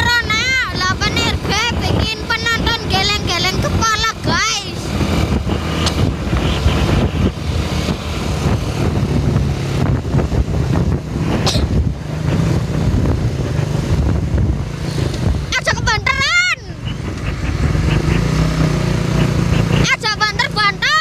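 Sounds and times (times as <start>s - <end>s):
vehicle engines droning: 0.0s - 21.0s
wind rushing over microphone: 0.0s - 21.0s.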